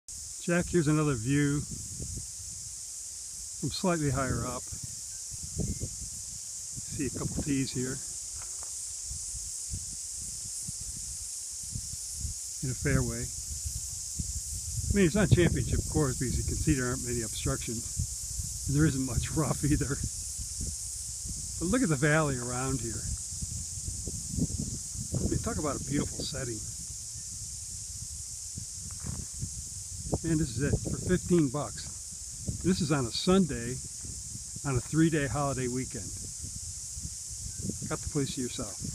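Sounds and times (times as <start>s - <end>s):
high-pitched hiss: 0.1s - 38.9s
insects chorus: 0.1s - 38.9s
wind rumble on microphone: 0.1s - 38.9s.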